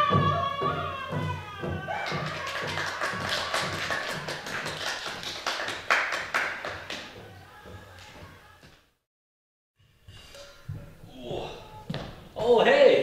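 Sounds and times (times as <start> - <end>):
small group clapping: 0.1 - 8.4
faint music: 6.4 - 9.0.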